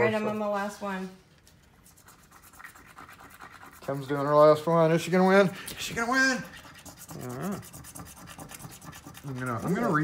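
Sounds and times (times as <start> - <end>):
coin scratching a lottery ticket: 1.8 - 4.9, 5.8 - 10.0.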